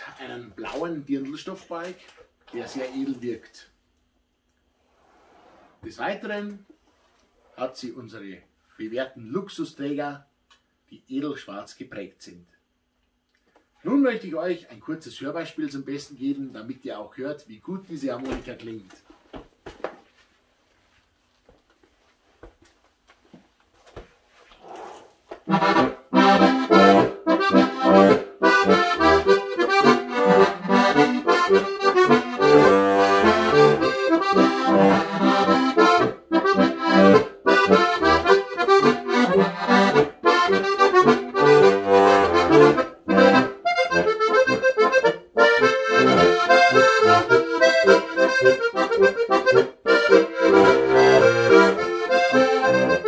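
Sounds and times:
button accordion playing lively tune: 25.5 - 53.0.

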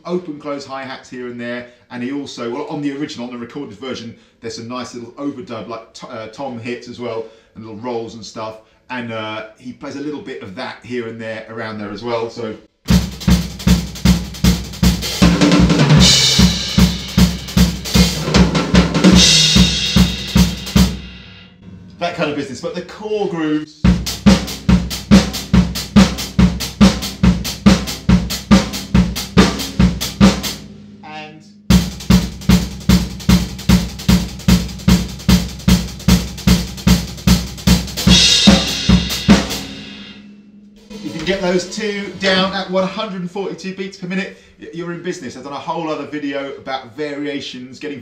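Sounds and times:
drum kit disco groove: 12.9 - 21.4, 23.8 - 30.7, 31.6 - 40.2, 40.8 - 43.1
open hi-hat washes: 12.9 - 21.5, 23.8 - 43.1
cymbal wash: 19.1 - 21.6, 38.0 - 42.8
tom hits: 38.0 - 42.8.

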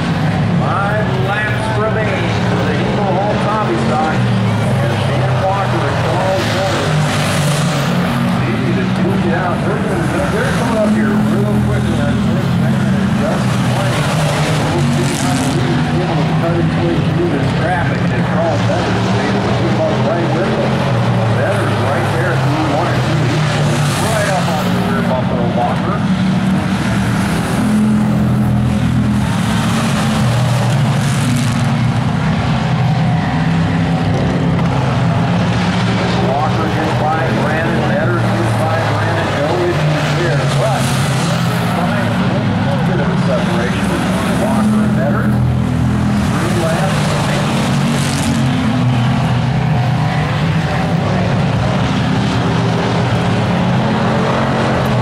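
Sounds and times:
race car engines: 0.0 - 55.0.

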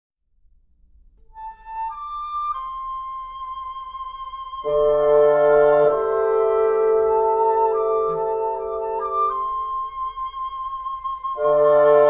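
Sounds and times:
solo flute melody: 1.2 - 12.0.

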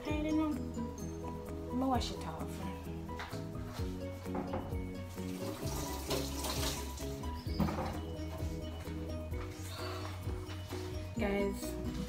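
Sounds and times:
background music with bass line: 0.0 - 12.0
tap water splashing: 4.3 - 8.0.

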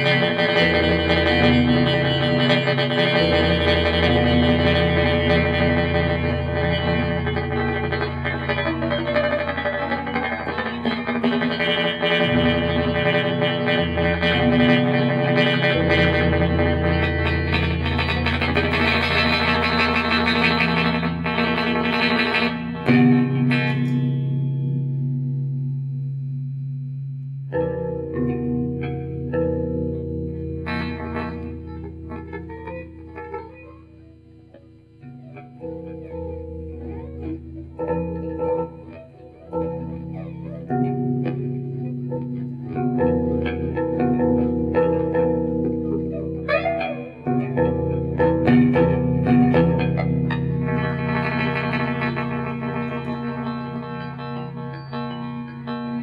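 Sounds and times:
electric guitar through effects: 0.0 - 56.0.

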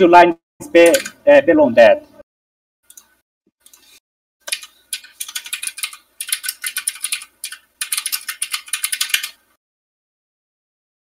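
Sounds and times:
computer keyboard typing: 0.8 - 1.2, 4.4 - 9.4.

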